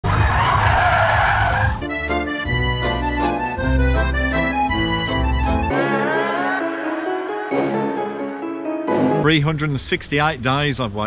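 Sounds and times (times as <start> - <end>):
accordion music: 1.8 - 9.3.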